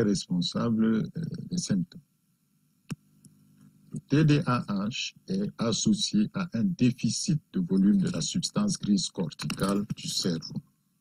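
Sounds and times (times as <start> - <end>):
faint steady hum: 0.0 - 11.0
sharp click: 9.4 - 10.0.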